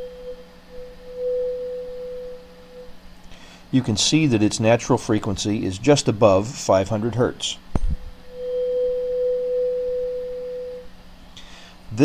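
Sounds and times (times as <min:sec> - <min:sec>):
tuning fork ringing: 0:00.0 - 0:03.2, 0:08.2 - 0:11.0.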